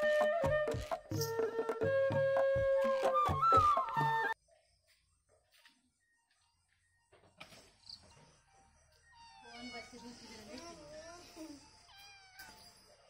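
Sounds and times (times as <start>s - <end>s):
cat meowing: 11.9s - 12.7s.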